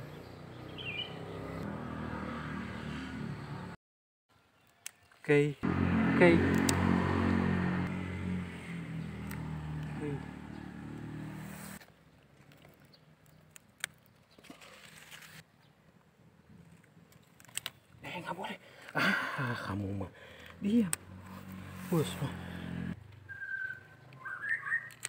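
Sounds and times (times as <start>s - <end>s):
motor engine humming: 5.6s - 11.8s.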